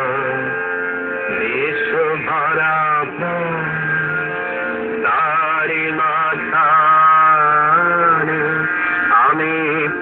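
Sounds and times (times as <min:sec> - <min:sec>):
man chanting long notes: 0:00.0 - 0:10.0
music: 0:00.0 - 0:10.0.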